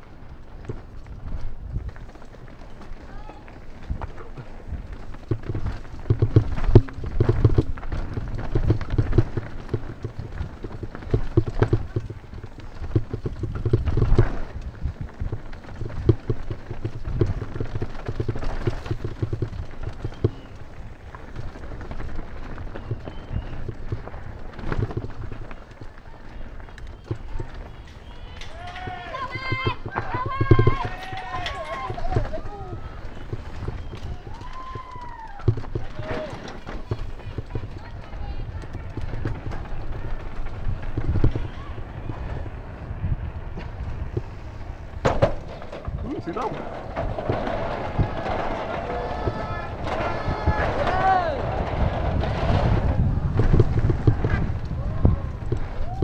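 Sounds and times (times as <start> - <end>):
bike chain and frame rattle: 0.0 - 56.0
tyre rumble: 0.0 - 56.0
wheels knocking on rocks: 0.0 - 56.0
people shouting and whooping: 28.1 - 33.1, 33.7 - 36.5, 47.9 - 51.7, 54.7 - 56.0.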